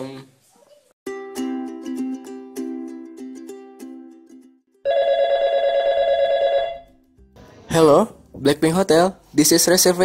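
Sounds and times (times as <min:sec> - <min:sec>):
telephone ringing: 0:04.9 - 0:07.0.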